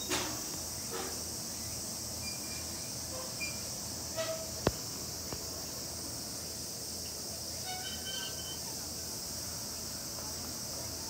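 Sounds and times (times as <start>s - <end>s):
high-pitched insect hiss: 0.0s - 11.0s.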